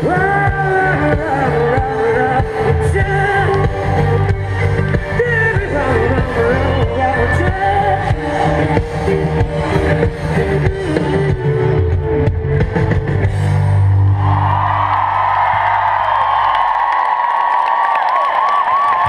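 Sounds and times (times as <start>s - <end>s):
live rock band playing: 0.0s - 14.6s
crowd cheering: 13.2s - 19.0s.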